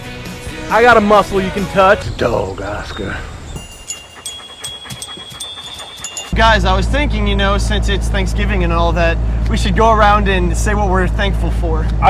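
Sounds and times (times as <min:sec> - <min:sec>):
dog panting: 0:02.9 - 0:07.3.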